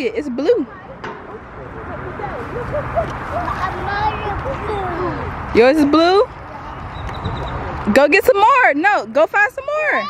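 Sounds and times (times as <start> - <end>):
distant voices of children and adults: 0.0 - 8.0
low outdoor rumble: 0.0 - 10.0.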